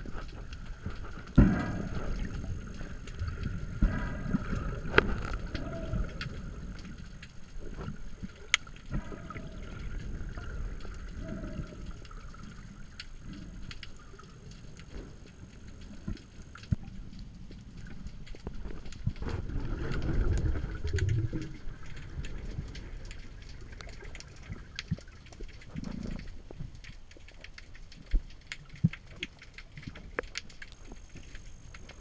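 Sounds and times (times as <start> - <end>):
muffled underwater churning: 0.0 - 32.0.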